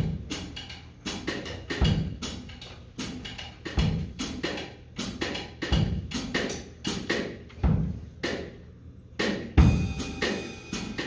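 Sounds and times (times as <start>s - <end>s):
cymbal strikes: 9.3s - 11.0s
jazz band playing: 9.6s - 11.0s.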